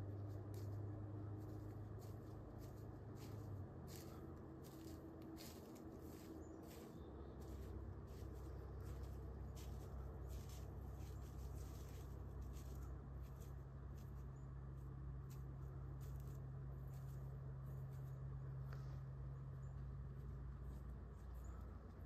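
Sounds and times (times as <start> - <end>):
hooves rustling dry leaves: 0.0 - 22.0
steady low rumble: 0.0 - 22.0.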